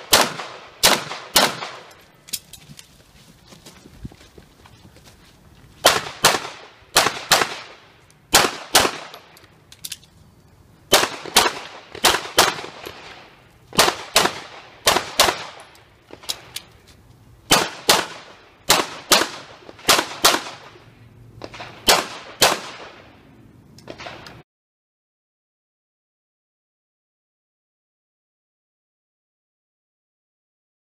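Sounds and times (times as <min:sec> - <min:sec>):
handgun shots: 0:00.1 - 0:02.4.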